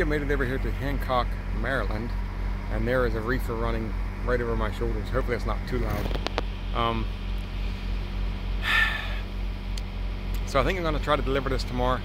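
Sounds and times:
refrigeration unit droning: 0:00.0 - 0:12.0.

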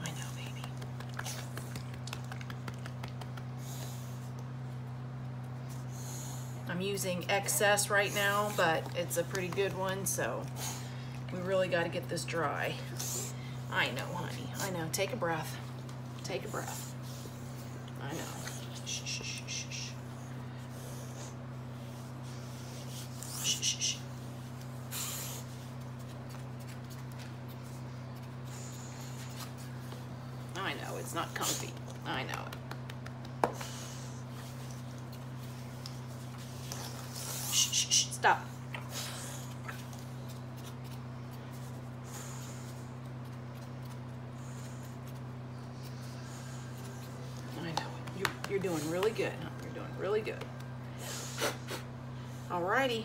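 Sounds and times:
low electrical hum: 0:00.0 - 0:53.0
hands rustling dog fur: 0:00.1 - 0:03.9
squeeze bottle puffing air: 0:51.0 - 0:51.9.

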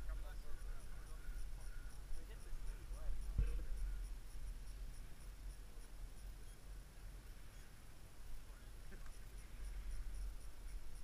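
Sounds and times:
thump: 0:03.3 - 0:04.0.

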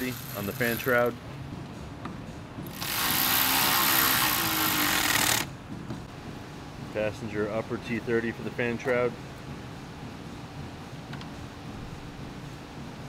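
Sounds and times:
power driver whirring: 0:02.7 - 0:05.5.

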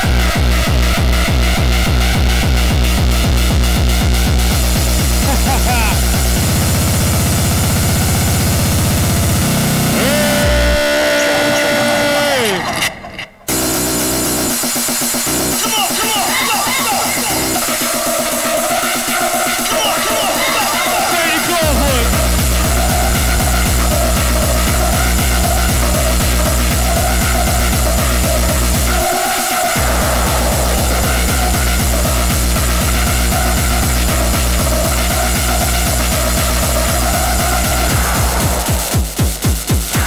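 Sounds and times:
fast kick drum: 0:29.8 - 0:40.0.

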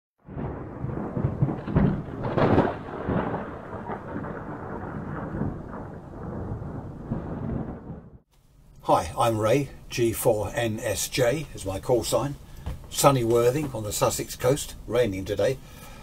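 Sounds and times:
rain: 0:00.2 - 0:08.2
thunder rumbling: 0:00.2 - 0:08.3.

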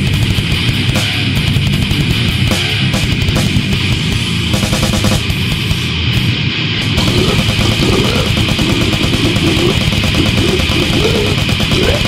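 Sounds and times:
fast dense drumming: 0:00.0 - 0:05.8, 0:07.0 - 0:12.0
distorted guitars and bass: 0:00.0 - 0:12.0.

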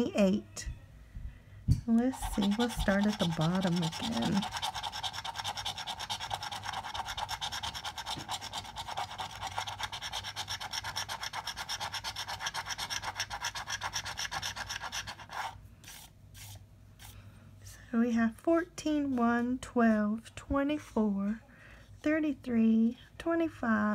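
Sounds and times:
coin scratching lottery ticket: 0:02.1 - 0:15.6.

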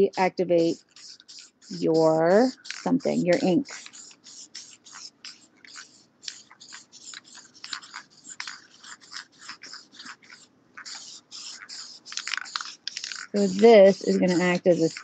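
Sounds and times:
aerosol can spraying in bursts: 0:00.0 - 0:15.0.

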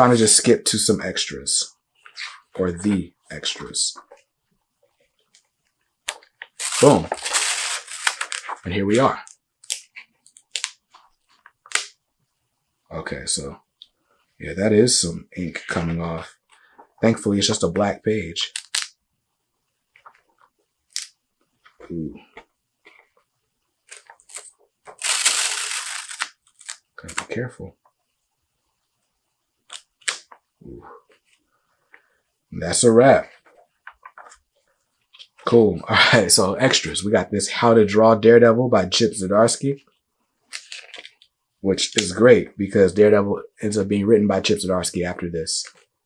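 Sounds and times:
glossy pages turning: 0:05.3 - 0:11.9, 0:23.9 - 0:27.4, 0:33.2 - 0:34.5
sticky pages peeling apart: 0:06.1 - 0:08.6, 0:23.9 - 0:27.4.

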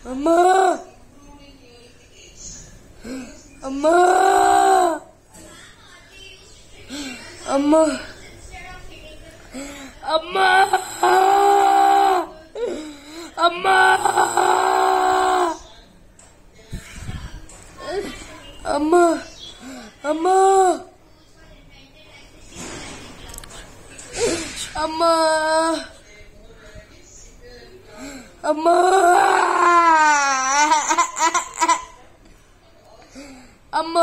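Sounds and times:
young man wailing: 0:03.8 - 0:05.0, 0:10.4 - 0:12.3, 0:13.4 - 0:15.6, 0:28.6 - 0:30.9.

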